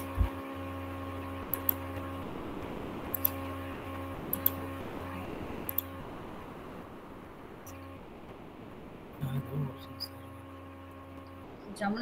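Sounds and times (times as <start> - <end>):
electrical buzzing hum: 0.0 - 12.0
computer mouse clicking: 1.5 - 1.8, 3.1 - 3.5, 4.3 - 4.6, 5.7 - 5.9.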